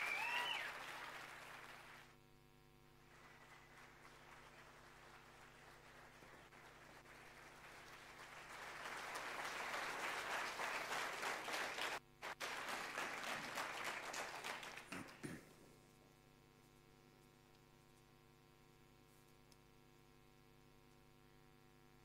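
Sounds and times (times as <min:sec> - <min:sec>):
audience applauding: 0:00.0 - 0:02.1, 0:03.0 - 0:15.5.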